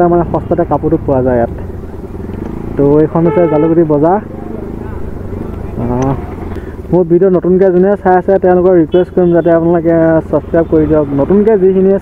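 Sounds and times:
motorcycle engine rumble: 0.0s - 12.0s
road noise: 0.0s - 12.0s.

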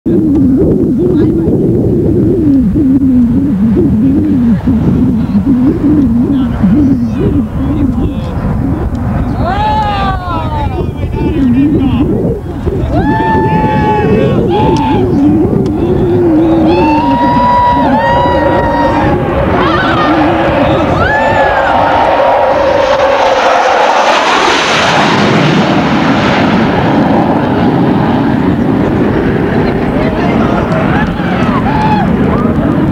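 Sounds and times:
distant jet engines drone: 0.1s - 32.9s.

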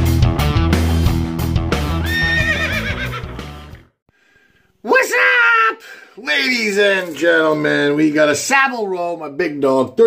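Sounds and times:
rock music: 0.0s - 3.9s
horse whinnying: 2.0s - 3.4s.

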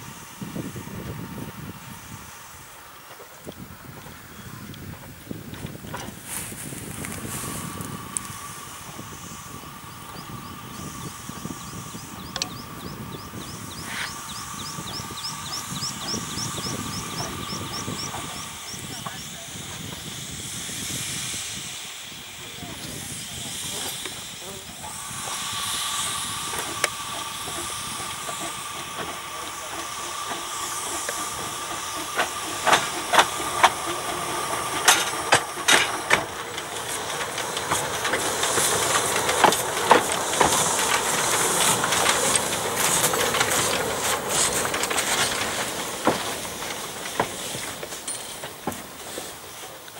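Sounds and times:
steady high whine: 0.0s - 49.2s
steam locomotive hissing steam: 0.0s - 49.9s.

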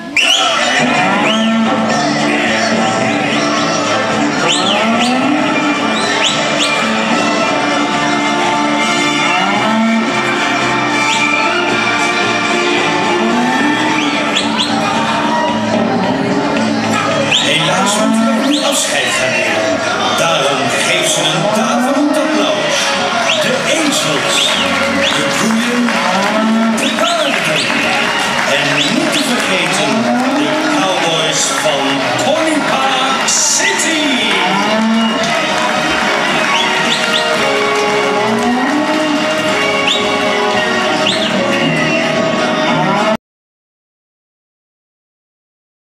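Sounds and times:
background music: 0.0s - 43.2s
cattle mooing: 0.6s - 16.5s, 17.4s - 19.2s, 20.6s - 32.2s, 33.2s - 41.4s, 42.6s - 43.2s.

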